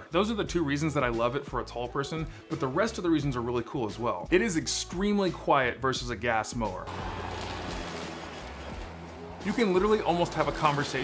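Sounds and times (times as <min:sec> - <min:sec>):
electric lawn mower whirring: 0:06.9 - 0:11.0.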